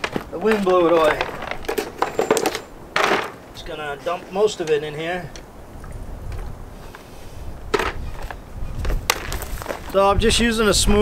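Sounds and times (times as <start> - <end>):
handling clicks and knocks: 0.0 - 3.4
wind noise on microphone: 5.3 - 11.0.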